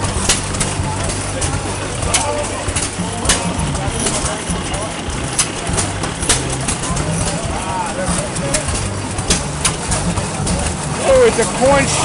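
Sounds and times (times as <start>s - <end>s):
stationary engines running: 0.0s - 12.0s
voices murmuring: 0.0s - 12.0s.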